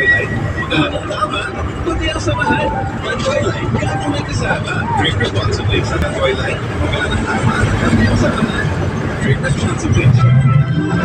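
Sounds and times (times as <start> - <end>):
vehicle engine and road noise: 0.0 - 11.0
voices: 0.0 - 11.0.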